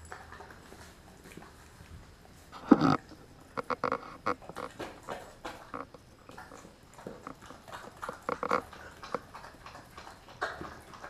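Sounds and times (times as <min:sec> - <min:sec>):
dog chewing and smacking: 0:00.0 - 0:11.0.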